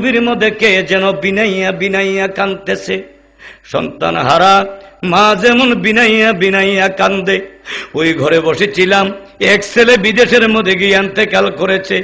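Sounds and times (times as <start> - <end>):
man chanting sermon: 0.0 - 12.0.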